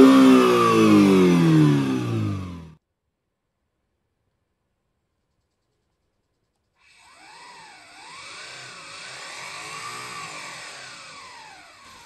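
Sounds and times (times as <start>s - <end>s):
synthetic engine sound revving: 0.0s - 2.8s, 6.9s - 12.0s.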